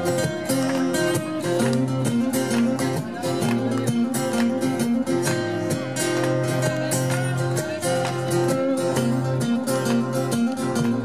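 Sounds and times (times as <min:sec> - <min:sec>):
acoustic guitars strumming: 0:00.0 - 0:11.0.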